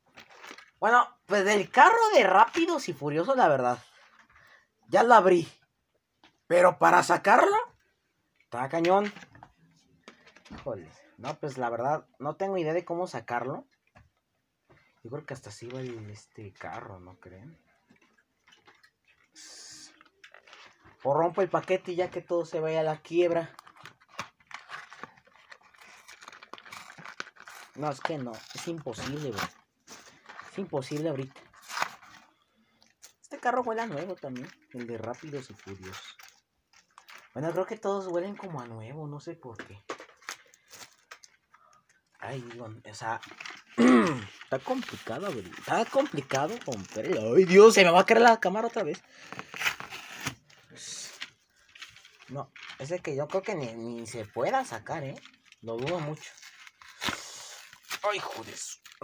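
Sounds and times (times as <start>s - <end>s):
packaging crinkling: 18.0s - 22.1s, 23.2s - 38.5s, 39.9s - 59.0s.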